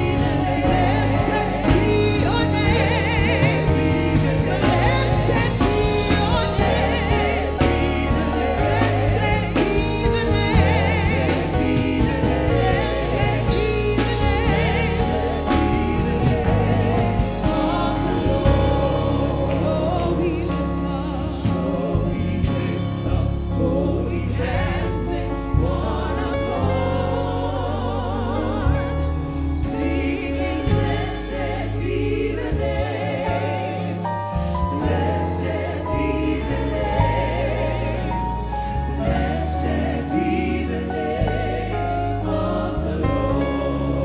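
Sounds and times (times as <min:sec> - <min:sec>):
drum kit beat: 0:00.0 - 0:26.1
bass guitar line: 0:00.0 - 0:44.0
keyboard: 0:00.0 - 0:44.0
singers with vibrato: 0:00.0 - 0:44.0.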